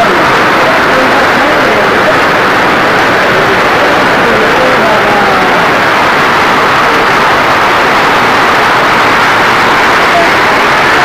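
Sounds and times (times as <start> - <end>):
heavy hail and rain falling: 0.0 - 11.0.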